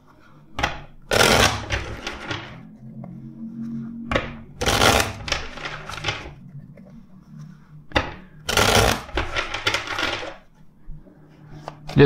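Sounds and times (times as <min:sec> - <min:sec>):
cards being shuffled: 0:04.6 - 0:06.4, 0:08.5 - 0:10.6.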